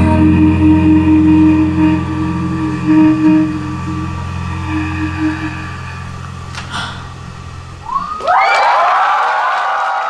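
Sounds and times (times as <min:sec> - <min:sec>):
live pop song drone: 0:00.0 - 0:08.4.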